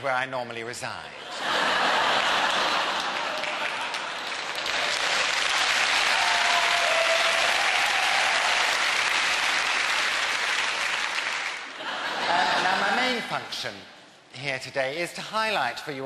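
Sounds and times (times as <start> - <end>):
audience applauding: 1.7 - 13.0.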